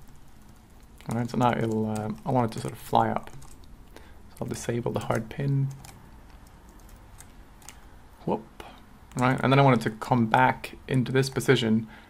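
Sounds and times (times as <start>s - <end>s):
computer keys clicking: 0.0s - 7.9s.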